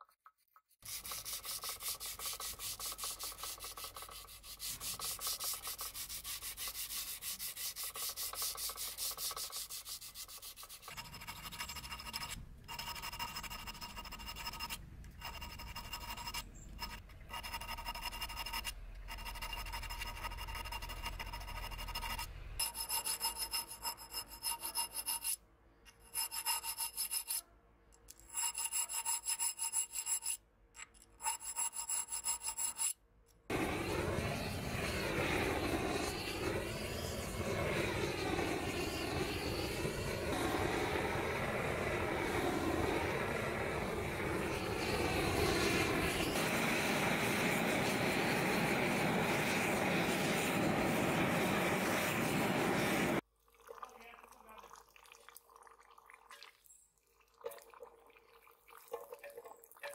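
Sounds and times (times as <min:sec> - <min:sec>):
file stroking knife blade: 0:00.4 - 0:27.5, 0:28.1 - 0:33.0
gas torch burning: 0:33.5 - 0:53.2.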